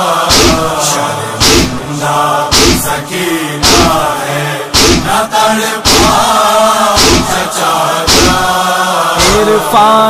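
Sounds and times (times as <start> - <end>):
voices chanting a lament: 0.0 - 10.0
chest-beating thumps: 0.3 - 0.8, 1.4 - 1.9, 2.5 - 3.0, 3.6 - 4.1, 4.7 - 5.2, 5.8 - 6.3, 7.0 - 7.5, 8.1 - 8.5.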